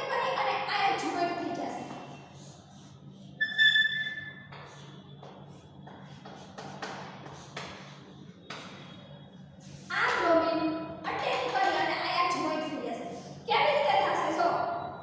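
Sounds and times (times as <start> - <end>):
chalk squeaking on blackboard: 1.9 - 7.7
chalk scratching on blackboard: 1.9 - 8.0.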